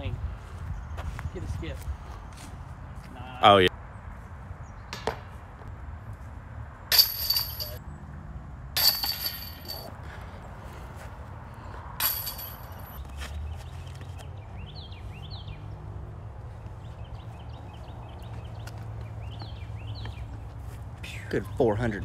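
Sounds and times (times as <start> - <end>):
chains jingling: 6.9 - 7.8, 8.8 - 9.9, 12.0 - 13.0
discs striking metal chains: 6.9 - 7.8, 8.8 - 9.9, 12.0 - 13.0.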